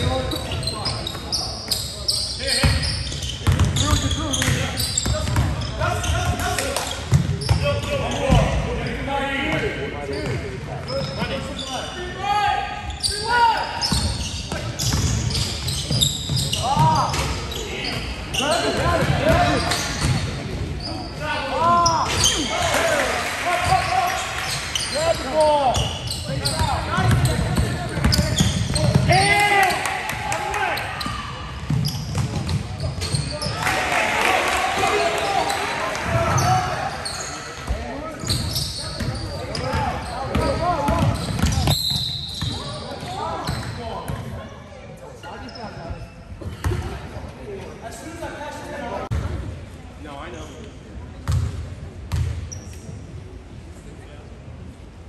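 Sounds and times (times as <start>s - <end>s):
basketball bouncing on wooden floor: 3.4s - 3.7s.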